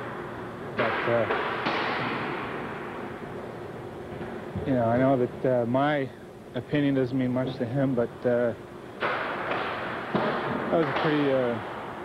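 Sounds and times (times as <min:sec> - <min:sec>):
background hiss: 0:00.0 - 0:12.0.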